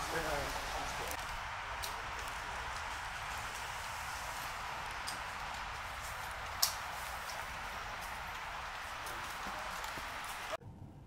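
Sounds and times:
outdoor background hiss: 0.0s - 11.0s
footsteps on dirt path: 1.2s - 10.6s.

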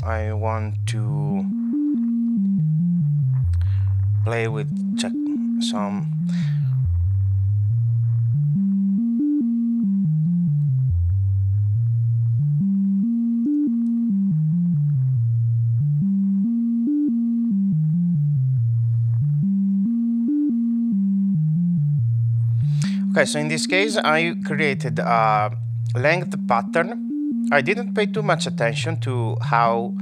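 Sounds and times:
synthesizer tone stepping notes: 0.0s - 30.0s.

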